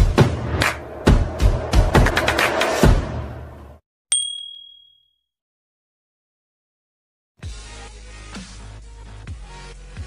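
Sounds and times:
bright bell-like ding: 4.1s - 5.2s.

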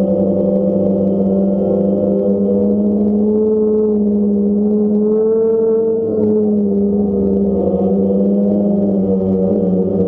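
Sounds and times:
drone propellers humming: 0.0s - 10.0s.

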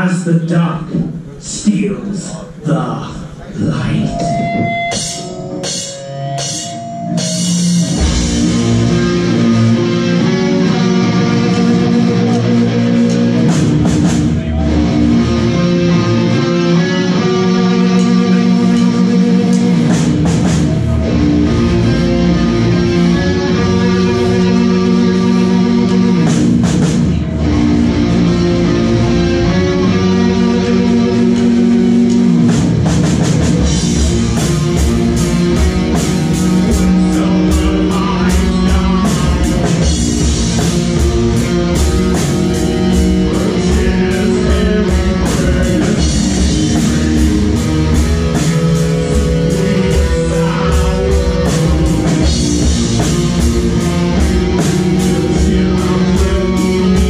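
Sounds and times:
live metal band playing: 0.0s - 57.0s.

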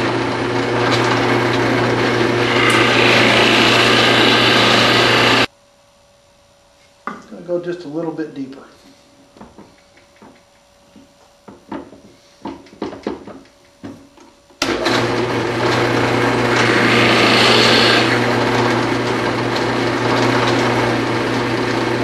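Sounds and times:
drill bit boring into wood: 0.0s - 5.5s, 14.6s - 22.0s
drill press motor humming: 0.0s - 5.5s, 14.6s - 22.0s
wooden block knocking: 9.4s - 14.4s.

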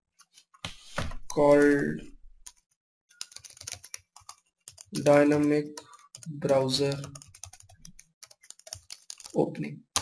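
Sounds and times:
typing on a computer keyboard: 3.2s - 9.4s.

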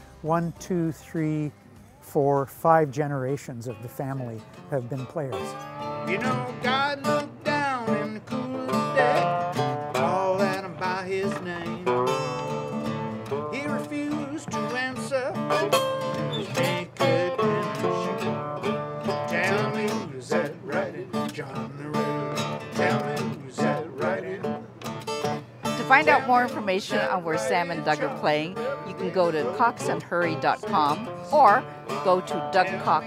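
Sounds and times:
acoustic guitar: 0.0s - 33.0s
resonator guitar: 0.0s - 33.0s.

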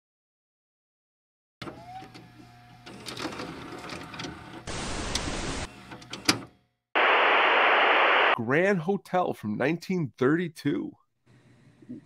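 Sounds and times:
tv static hiss: 4.7s - 5.7s, 7.0s - 8.4s.

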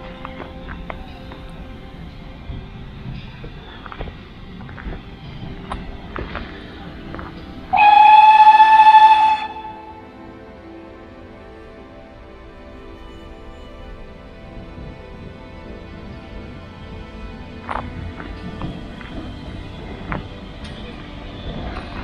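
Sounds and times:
background music: 0.0s - 22.0s
steam locomotive whistle: 7.7s - 11.6s.

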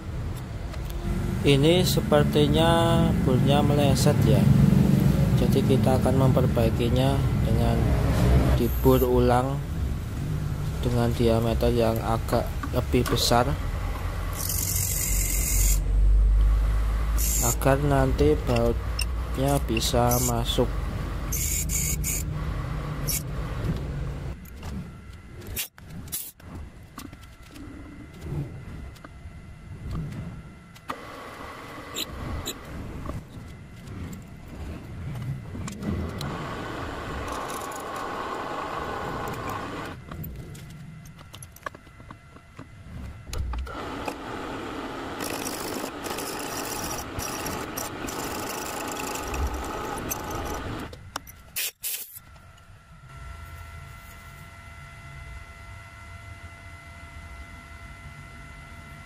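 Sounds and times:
drill cutting into steel: 14.3s - 15.9s, 17.2s - 17.6s, 20.1s - 20.4s, 21.3s - 22.3s, 45.2s - 50.8s.

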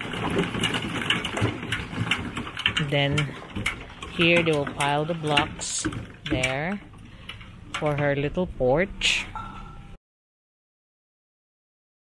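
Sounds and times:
construction clicks and knocks: 0.0s - 8.4s.

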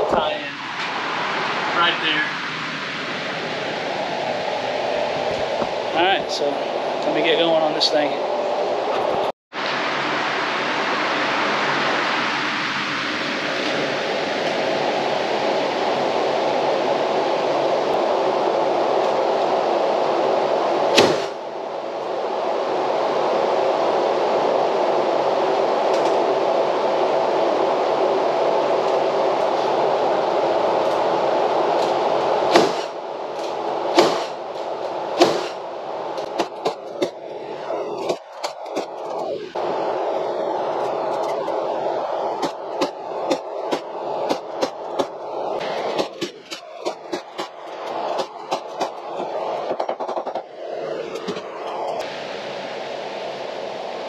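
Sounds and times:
electric floor fan running: 39.6s - 49.7s
sharp knocks and clacks: 49.7s - 50.5s.

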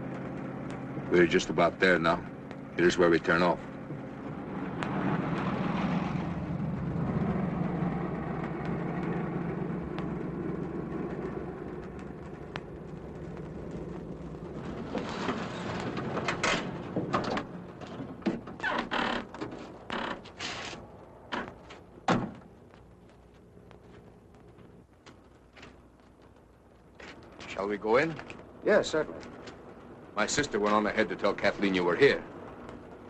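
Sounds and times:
car engine running: 0.0s - 18.6s.

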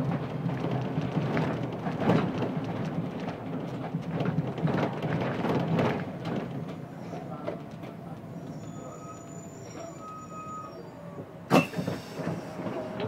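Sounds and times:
high-pitched bus brake squeal: 8.3s - 13.0s.

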